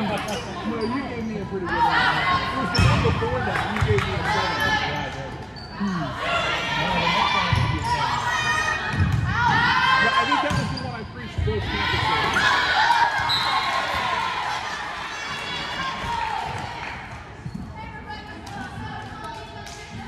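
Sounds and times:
sneakers squeaking: 0.0 - 6.7, 7.3 - 14.3, 15.2 - 19.6
voices echoing in gym: 0.0 - 20.0.

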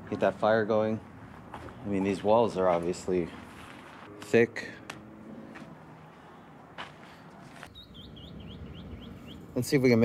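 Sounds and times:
small bird chirping: 7.7 - 9.6.

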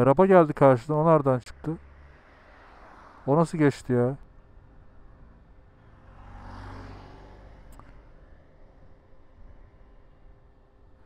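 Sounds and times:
vehicle passing: 1.1 - 11.0
low engine hum: 4.2 - 11.0.

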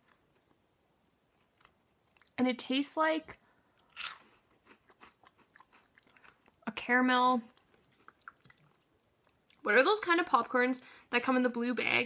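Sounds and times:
faint crunchy chewing: 1.3 - 2.4, 3.3 - 6.8, 7.4 - 9.7.

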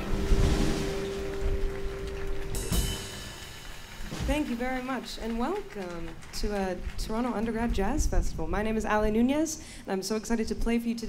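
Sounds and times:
cymbal wash: 0.0 - 5.0
jazz combo final chord: 0.0 - 5.0
drum rolls: 0.0 - 9.0.

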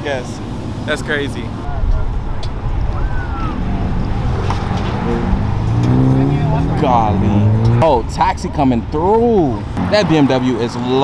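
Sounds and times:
car passing: 0.0 - 11.0
street traffic rumble: 0.0 - 11.0.

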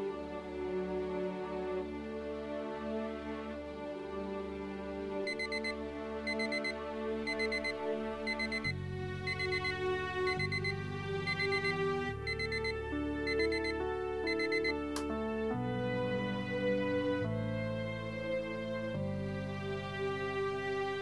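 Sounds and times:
soft slow music chords: 0.0 - 21.0
alarm clock beeping: 5.3 - 14.9.

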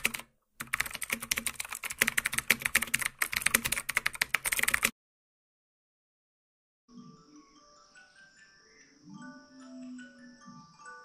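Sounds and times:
computer keyboard typing: 0.0 - 4.9.

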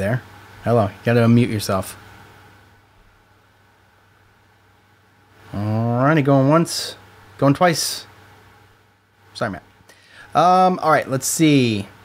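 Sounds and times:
light low hum: 0.0 - 12.0
steady low hiss: 0.0 - 12.0.

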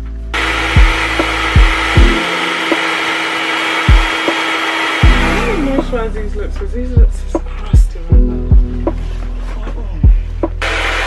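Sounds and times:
background music with kick drum: 0.0 - 11.0
hair dryer blowing: 0.3 - 5.9, 10.6 - 11.0.

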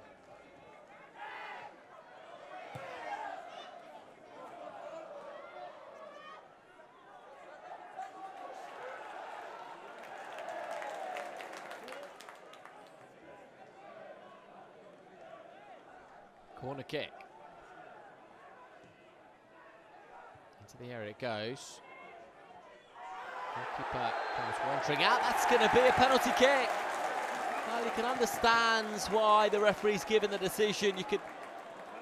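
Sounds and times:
crowd shouting and chanting: 23.1 - 32.0.

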